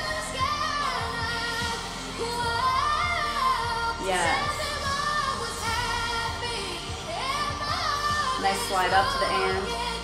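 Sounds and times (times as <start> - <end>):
backing track: 0.0 - 10.0
girl singing pop ballad: 0.0 - 10.0.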